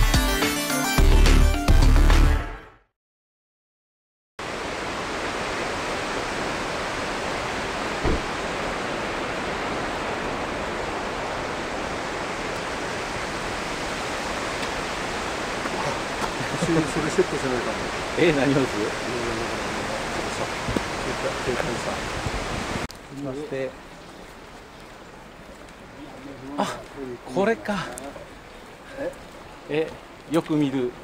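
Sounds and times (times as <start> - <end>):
steady rushing noise: 4.4 - 22.9
short thump: 8.0 - 8.4
voices: 15.6 - 22.2, 25.8 - 31.0.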